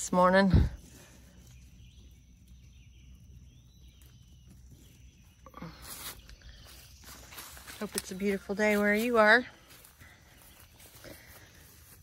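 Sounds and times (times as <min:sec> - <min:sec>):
quiet outdoor background: 0:00.0 - 0:12.0
rustling of tomato plants: 0:00.0 - 0:12.0.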